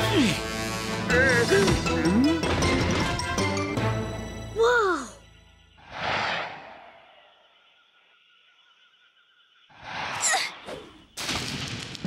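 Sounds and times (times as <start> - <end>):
characters' cries and grunts: 1.1 - 2.4, 4.5 - 5.2.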